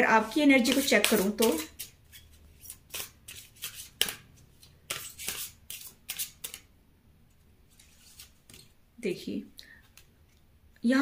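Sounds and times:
cards being shuffled: 0.6 - 6.7.

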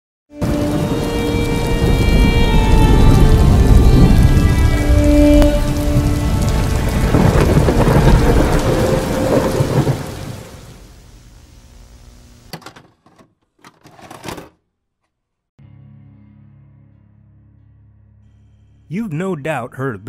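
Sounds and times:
thunder: 0.4 - 10.7
rain: 0.4 - 12.5.

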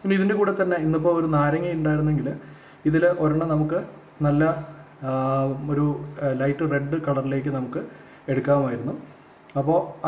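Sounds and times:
man speaking: 0.0 - 10.0.

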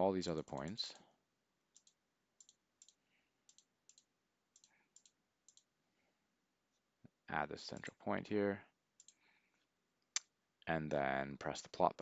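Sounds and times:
faint mouse clicks: 1.7 - 5.7, 9.0 - 10.3.

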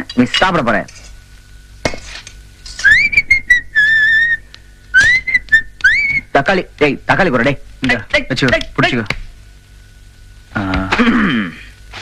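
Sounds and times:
person whistling a tune: 2.8 - 4.4, 5.0 - 6.3.

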